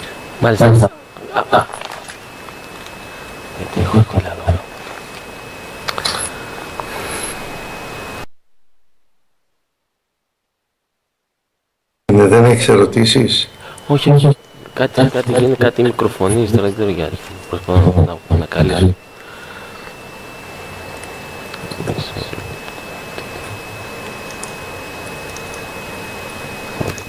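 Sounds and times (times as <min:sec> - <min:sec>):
thin high whine: 0:00.0 - 0:09.7, 0:12.1 - 0:27.0
static hiss: 0:00.0 - 0:27.0
line hiss: 0:04.4 - 0:08.3.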